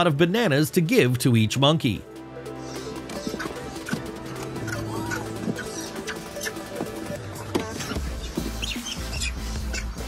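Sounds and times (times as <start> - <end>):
background music with bass: 0.0 - 10.0
macaques chirping squeaks: 2.6 - 10.0.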